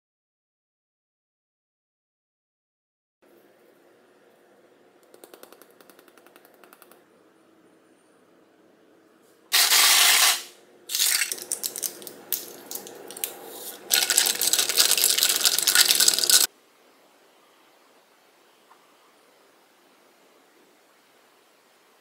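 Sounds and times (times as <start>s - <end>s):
loud burst of noise: 9.5s - 10.6s
seed shaker rattling: 9.6s - 16.5s
crackling and clinking glass mug: 10.9s - 16.5s
spoon stirring in mug: 10.9s - 16.5s.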